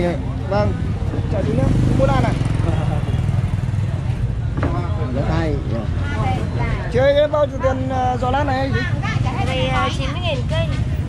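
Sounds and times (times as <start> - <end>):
people talking: 3.9 - 11.0.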